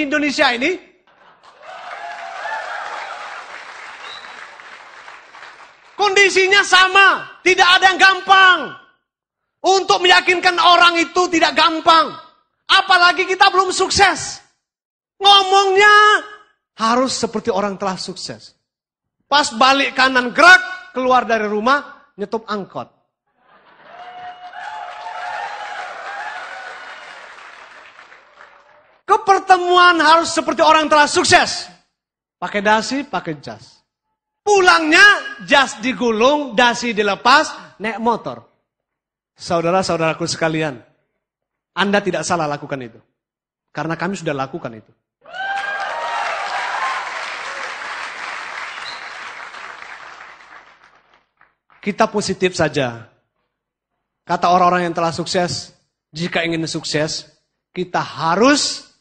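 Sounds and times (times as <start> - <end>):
audience applauding: 1.1 - 6.0, 23.6 - 29.0, 45.4 - 51.8.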